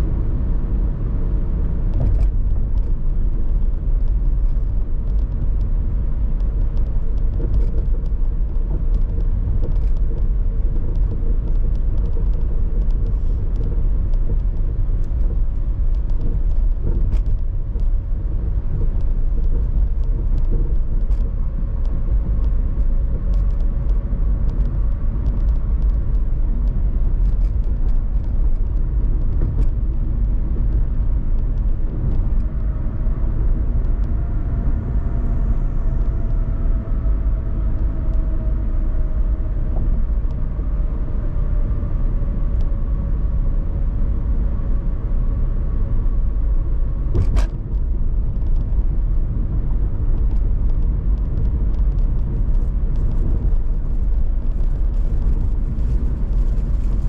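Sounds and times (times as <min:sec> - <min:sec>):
road and tyre noise: 0:00.0 - 0:57.0.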